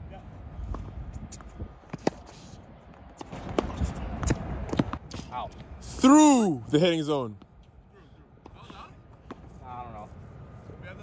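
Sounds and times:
wind noise on microphone: 0.0s - 5.8s
tennis ball struck and bouncing: 3.1s - 5.3s.

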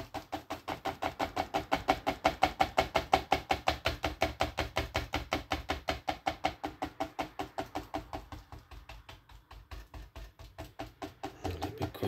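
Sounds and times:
paintbrush tapping on paper: 0.0s - 12.0s.

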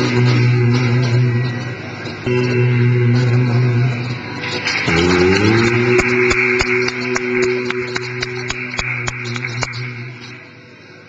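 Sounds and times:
long held music note: 2.3s - 10.5s.

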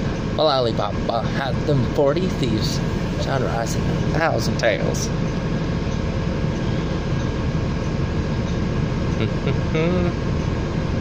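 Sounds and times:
bus engine idling: 0.0s - 11.0s.

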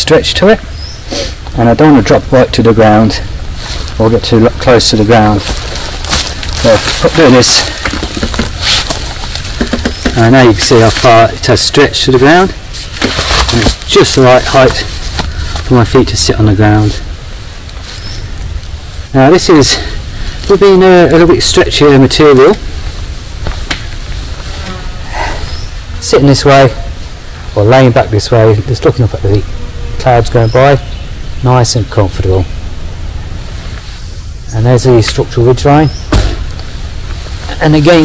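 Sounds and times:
steady low rumble: 0.0s - 38.0s
hammock rustling: 3.3s - 27.9s, 29.4s - 34.5s, 36.2s - 38.0s.

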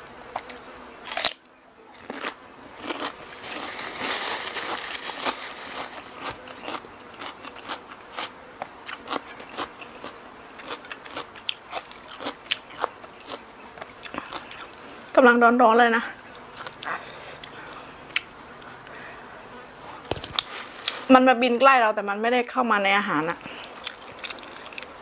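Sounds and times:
fly buzzing: 0.0s - 21.4s
crunchy chewing: 0.3s - 15.2s, 16.3s - 19.0s, 20.0s - 21.1s, 23.4s - 25.0s.

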